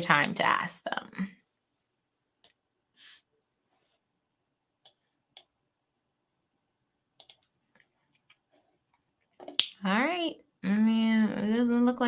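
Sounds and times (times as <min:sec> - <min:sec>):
woman speaking: 0:00.0 - 0:01.4, 0:09.8 - 0:12.0.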